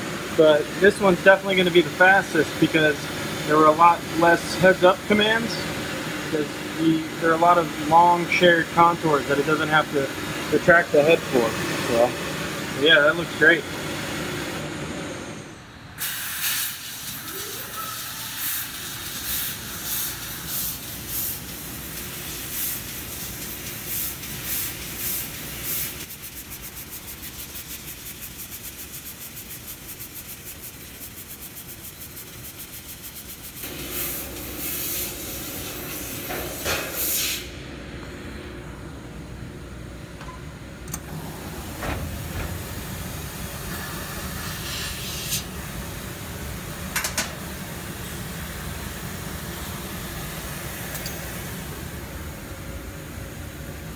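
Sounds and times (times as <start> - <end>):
laser cutter gas jet hissing: 0.0 - 14.6, 16.0 - 37.6, 41.1 - 52.0.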